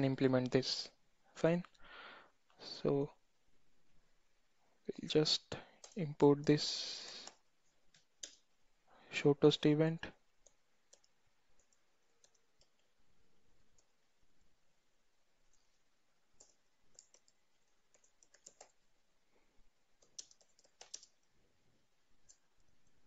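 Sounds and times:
computer keyboard keystrokes: 5.8s - 6.6s, 10.4s - 12.8s, 16.4s - 18.8s, 20.0s - 21.3s.

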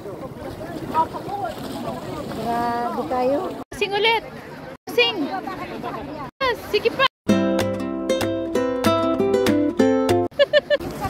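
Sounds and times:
people chattering: 0.0s - 7.1s.

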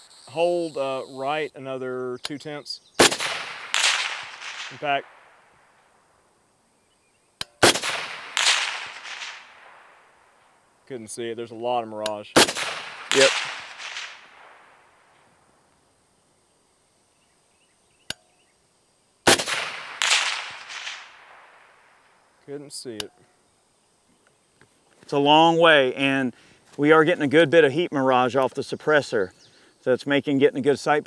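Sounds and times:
suppressed rifle shot: 3.0s - 5.8s, 7.4s - 10.5s, 12.4s - 15.2s, 19.3s - 22.2s
sharp click: 7.4s - 9.5s, 12.0s - 12.2s, 18.0s - 18.3s.

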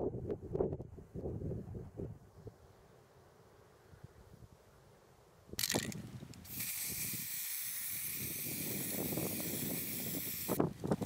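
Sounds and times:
spray can rattle: 5.6s - 10.6s
aerosol spray can hissing: 6.4s - 10.6s.

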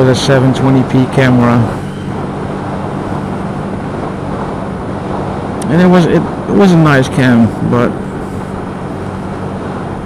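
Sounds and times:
motorcycle engine droning: 0.0s - 10.0s
road noise: 0.0s - 10.0s
wind noise: 0.0s - 10.0s.

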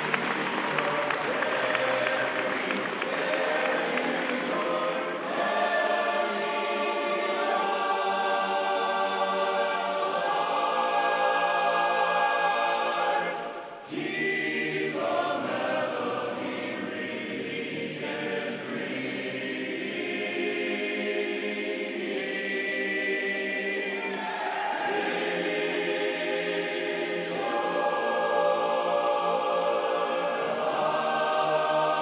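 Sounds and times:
men singing in harmony: 0.6s - 24.2s.

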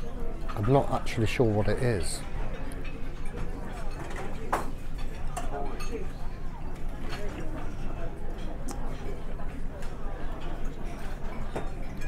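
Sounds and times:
background chatter of diners: 0.0s - 12.0s
cutlery clinking on crockery: 2.5s - 6.2s, 7.0s - 12.0s.

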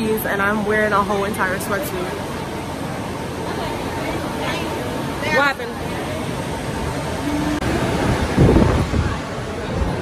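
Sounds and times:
crowd murmur: 0.0s - 10.0s
wind rushing on microphone: 7.6s - 10.0s.

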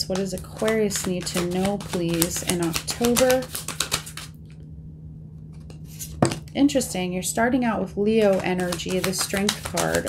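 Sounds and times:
cards being shuffled: 0.0s - 4.5s, 5.5s - 6.5s, 8.2s - 10.0s
low electrical hum: 0.0s - 10.0s
card slaps and clicks: 0.1s - 4.4s, 8.3s - 10.0s.

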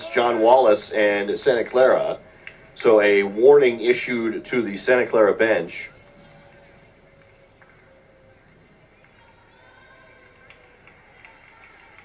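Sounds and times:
indistinct distant voices: 0.0s - 12.0s.

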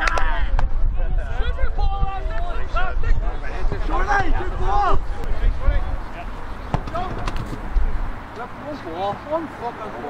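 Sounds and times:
wind rumble on microphone: 0.0s - 8.3s
players calling: 1.3s - 10.0s
sharp knocks: 6.7s - 7.8s.

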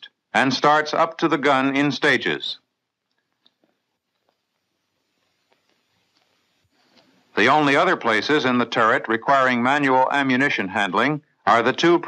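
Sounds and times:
faint film soundtrack hiss: 0.0s - 12.0s.

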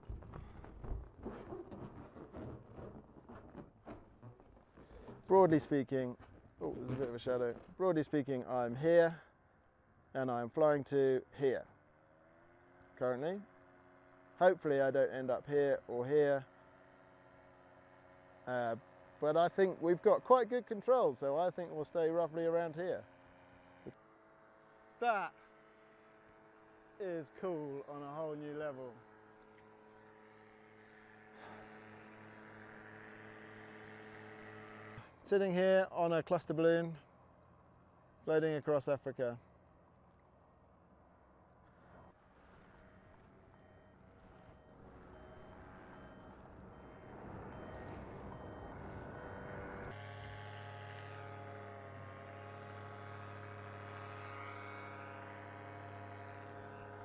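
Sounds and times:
steady low hum: 22.9s - 57.0s
electronic instrument beeping: 39.5s - 49.9s.

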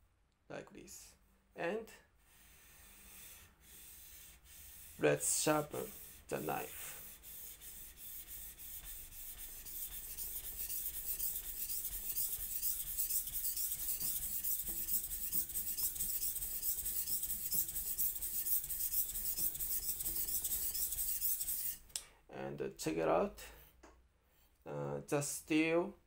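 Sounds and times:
knife scraping on whetstone: 5.6s - 21.8s.

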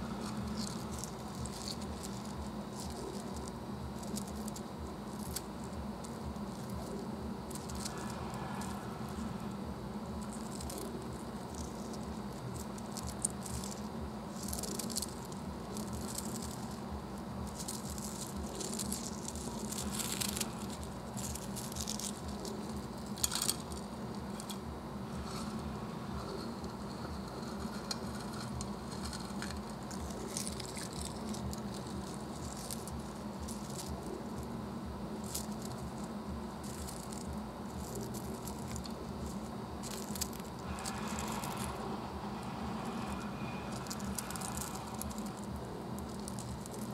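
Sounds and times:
steady low hum: 0.0s - 46.9s.

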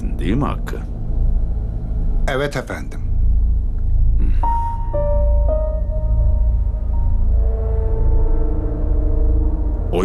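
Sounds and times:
deep steady drone: 0.0s - 10.0s
held ringing notes: 4.4s - 9.8s.

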